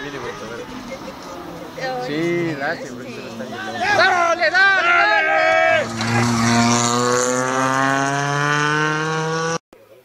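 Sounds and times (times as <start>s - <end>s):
rally car engine at high revs: 5.7s - 9.6s.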